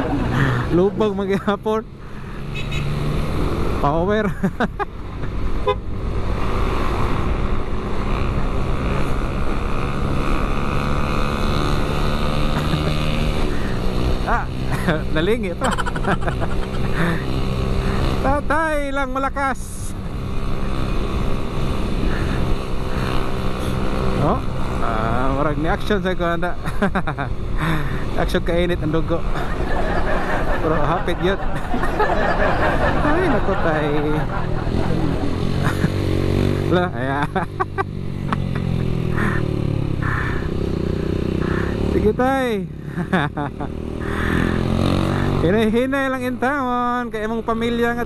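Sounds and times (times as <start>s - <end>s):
motorcycle engine running: 0.0s - 48.0s
road noise: 0.0s - 48.0s.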